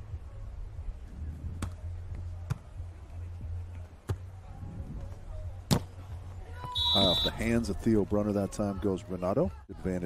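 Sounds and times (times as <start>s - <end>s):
volleyball smack: 5.7s - 5.9s
referee's whistle: 6.7s - 7.4s.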